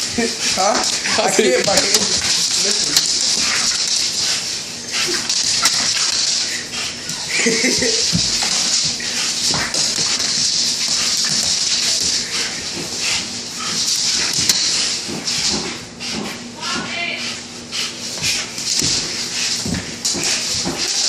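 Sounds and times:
broom and paws knocking on wood floor: 0.0s - 17.0s, 18.1s - 21.0s
dog breathing hard through nose: 8.4s - 20.6s.

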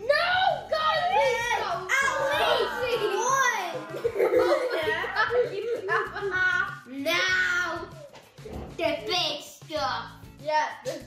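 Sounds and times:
children vocalising: 0.0s - 8.0s.

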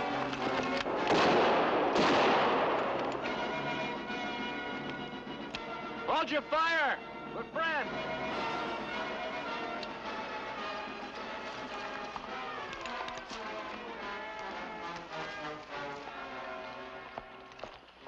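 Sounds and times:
dramatic orchestral music: 0.0s - 17.6s.

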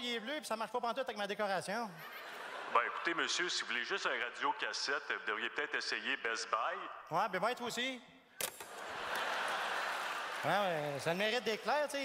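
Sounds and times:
audience laughing and clapping: 2.0s - 3.8s, 8.5s - 12.0s.

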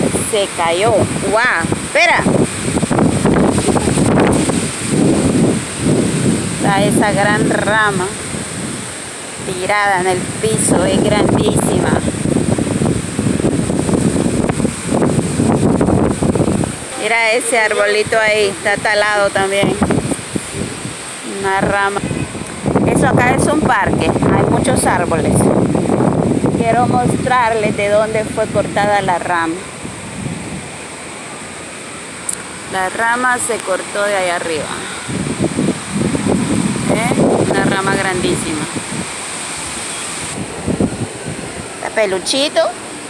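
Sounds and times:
gusty wind buffeting microphone: 0.0s - 43.0s.

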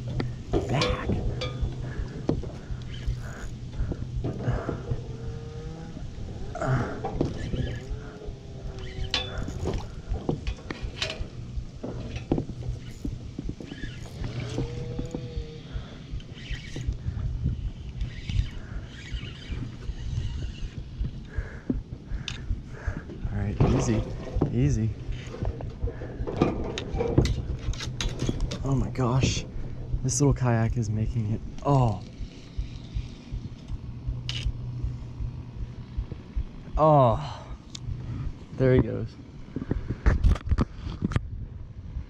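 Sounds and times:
man groaning: 6.4s - 7.1s.

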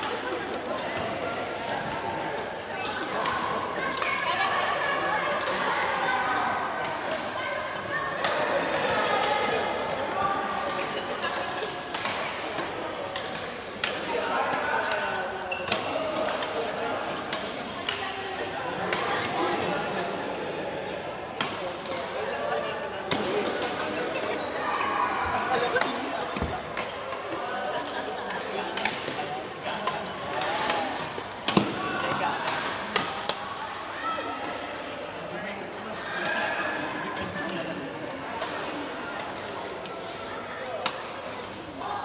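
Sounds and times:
voices in a sports hall: 0.0s - 42.0s.

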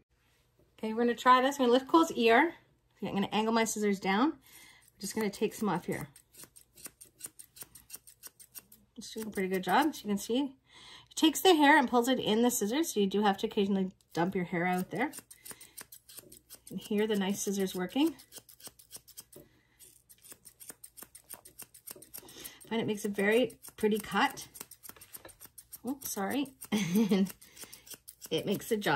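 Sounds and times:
thinning scissors snipping fur: 4.5s - 10.2s, 14.0s - 28.9s.

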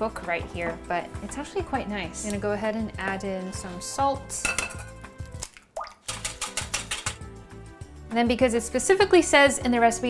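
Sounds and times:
egg plopping into liquid: 4.5s - 7.2s
whisk beating against glass bowl: 6.0s - 7.3s.

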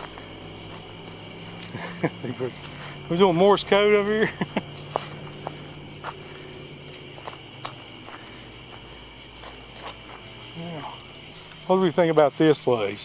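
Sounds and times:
insects chirring: 0.0s - 13.0s.

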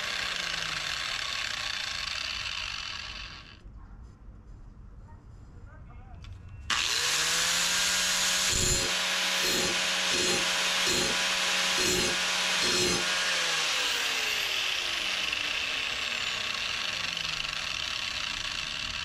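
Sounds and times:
angle grinder grinding metal: 0.0s - 3.6s, 6.7s - 19.0s.

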